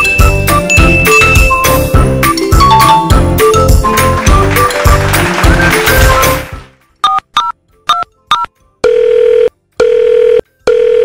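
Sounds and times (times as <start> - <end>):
telephone ringing tones: 7.0 - 11.0.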